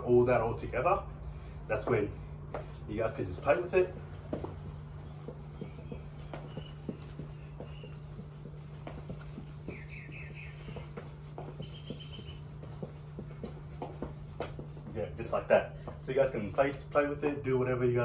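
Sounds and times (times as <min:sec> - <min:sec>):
feet stepping and shuffling: 0:00.1 - 0:18.0.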